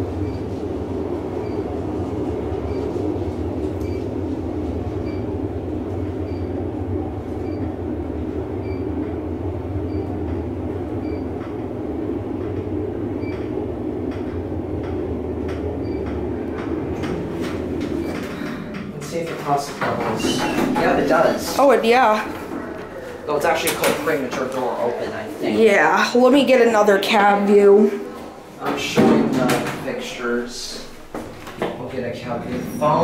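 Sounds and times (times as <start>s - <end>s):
elevator ride rumble: 0.0s - 33.0s
elevator clicks: 9.8s - 24.6s.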